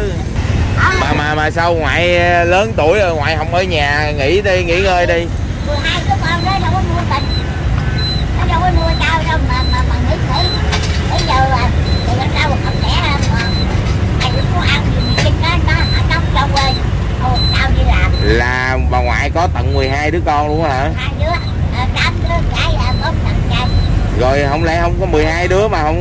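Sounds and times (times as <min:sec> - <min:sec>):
person talking: 0:00.0 - 0:07.4, 0:08.4 - 0:13.6, 0:14.2 - 0:26.0
motorbike traffic rumble: 0:00.0 - 0:26.0
faint short high beeps: 0:07.1 - 0:18.5.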